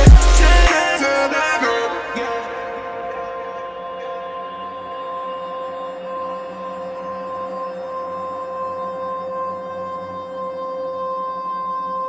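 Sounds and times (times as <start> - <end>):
steady held tone: 0.0 - 9.0.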